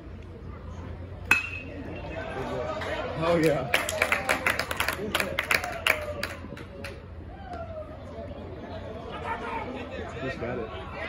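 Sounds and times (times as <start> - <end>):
spectators' voices: 0.0 - 11.0
metal bat hitting ball: 1.3 - 1.8.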